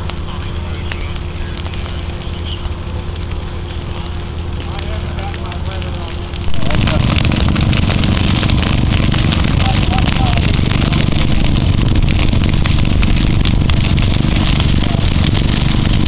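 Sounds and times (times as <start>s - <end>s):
fire crackling: 0.0s - 16.0s
grass fire rumbling: 0.0s - 16.0s.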